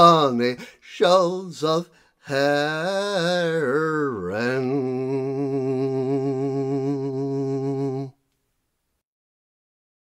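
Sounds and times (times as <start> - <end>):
man singing a held note: 0.0 - 8.2.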